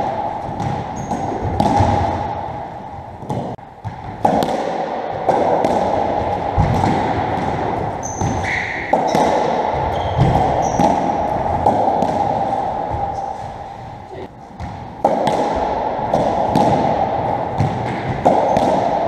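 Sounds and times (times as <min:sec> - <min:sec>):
ball hit by rackets echoing: 0:00.0 - 0:19.0.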